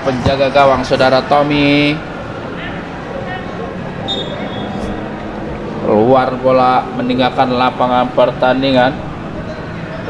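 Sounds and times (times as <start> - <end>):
faint distant voices: 0.0 - 10.0
steady background noise: 0.0 - 10.0.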